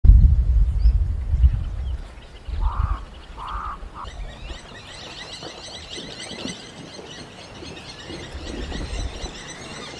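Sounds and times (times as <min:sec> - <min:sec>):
low wind rumble: 0:00.0 - 0:09.9
small birds chirping: 0:00.8 - 0:09.9.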